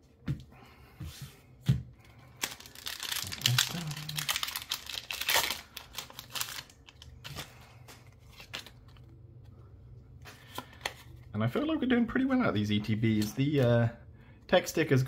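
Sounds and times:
cards rustling and clicking: 2.2 - 11.3
foil wrapper crinkling and tearing: 2.3 - 9.1.

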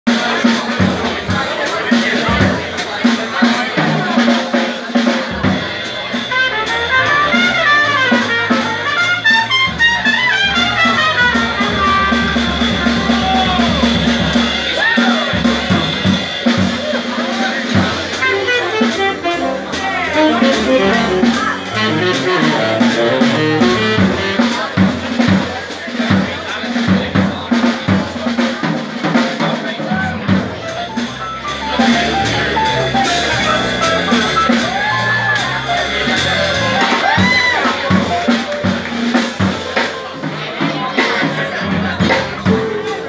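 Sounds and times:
busy drum kit: 0.1 - 43.0
trumpet playing fast lines: 6.3 - 12.5, 18.1 - 24.7.

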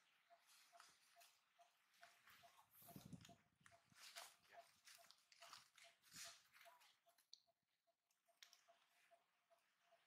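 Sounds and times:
rustling of dry leaf litter: 3.8 - 7.0.

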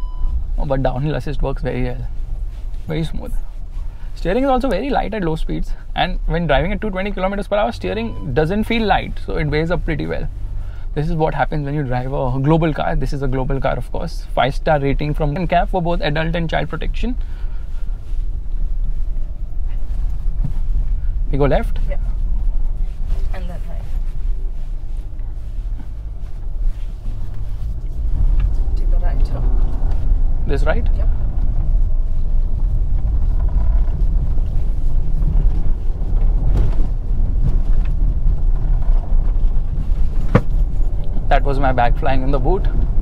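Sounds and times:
car engine running: 0.0 - 43.0
tyre and road noise: 0.0 - 43.0.

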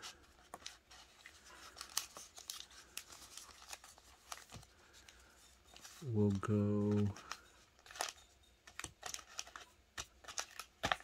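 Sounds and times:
foil card packs crinkling: 0.0 - 11.0.

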